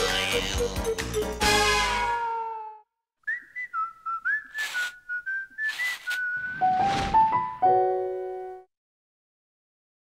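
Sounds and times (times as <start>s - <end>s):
whistled tune: 3.2s - 7.3s.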